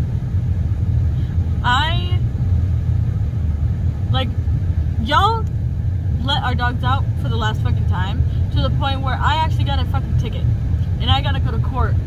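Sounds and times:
car cabin rumble: 0:00.0 - 0:12.0
woman speaking: 0:01.6 - 0:02.2, 0:04.1 - 0:04.3, 0:05.0 - 0:05.5, 0:06.2 - 0:12.0.

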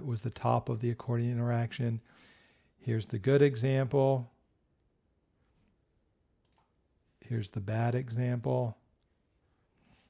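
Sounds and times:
computer mouse clicks: 0:06.4 - 0:06.8.

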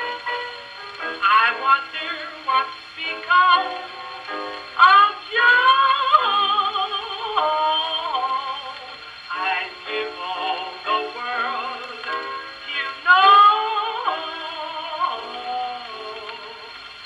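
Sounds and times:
woman singing blues on gramophone: 0:01.1 - 0:16.9.

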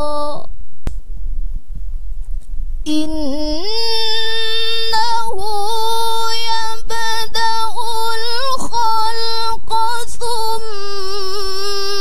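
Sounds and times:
woman reciting melodically: 0:00.0 - 0:00.6, 0:02.8 - 0:12.0.

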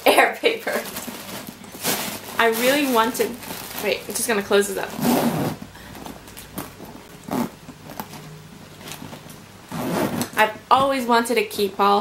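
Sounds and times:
metal zipper being closed: 0:04.9 - 0:05.6, 0:06.5 - 0:09.1, 0:09.7 - 0:10.4.

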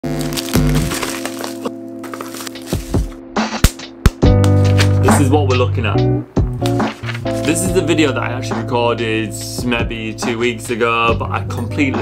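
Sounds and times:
plastic package crinkling: 0:00.0 - 0:03.2
background music with low bass: 0:00.0 - 0:12.0.

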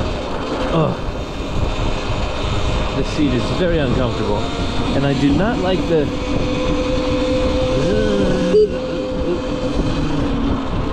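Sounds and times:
road noise: 0:00.0 - 0:10.9
wind rush on microphone: 0:00.0 - 0:10.9.

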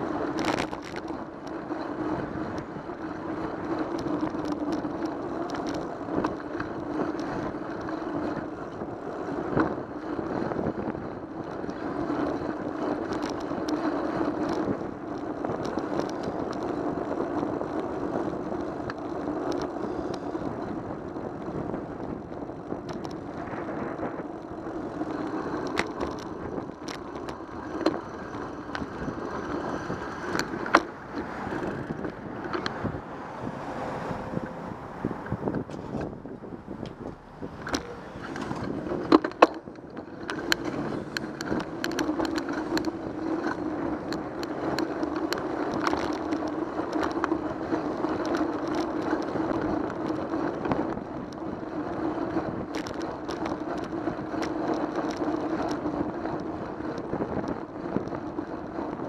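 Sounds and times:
bicycle tyre road rumble: 0:00.0 - 0:59.0.

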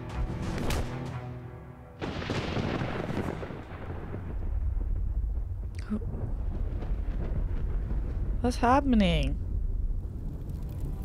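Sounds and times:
heavy boom: 0:02.0 - 0:10.4
deep low rumble: 0:03.7 - 0:11.0.

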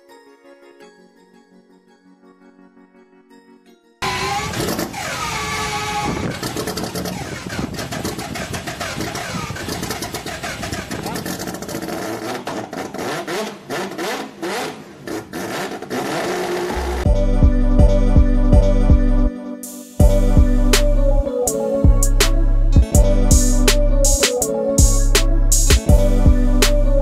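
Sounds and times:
car engine starting and revving: 0:04.0 - 0:17.2.

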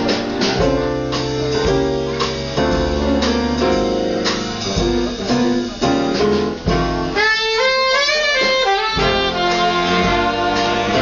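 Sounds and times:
big band playing slow jazz-blues: 0:00.0 - 0:11.0
alto saxophone solo phrase: 0:07.1 - 0:11.0.

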